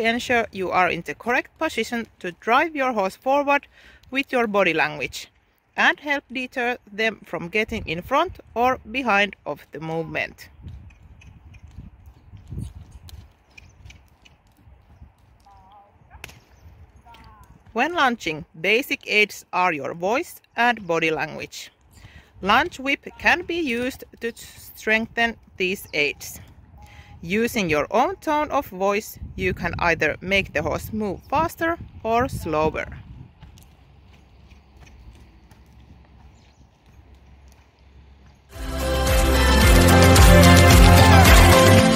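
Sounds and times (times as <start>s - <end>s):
horse hooves thudding on sand: 0.0s - 28.8s, 29.5s - 38.6s
whip crack: 16.2s - 16.5s.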